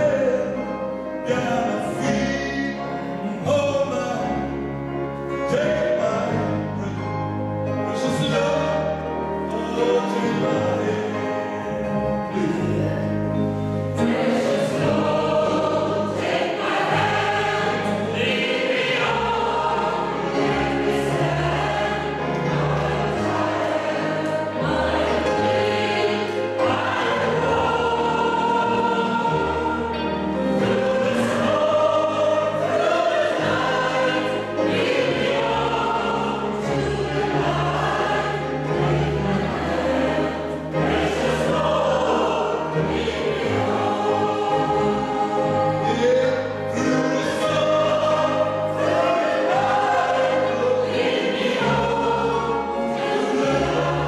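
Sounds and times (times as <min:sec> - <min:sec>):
mixed choir singing gospel: 0:00.0 - 0:54.0
piano: 0:00.0 - 0:54.0
upright double bass: 0:00.0 - 0:54.0.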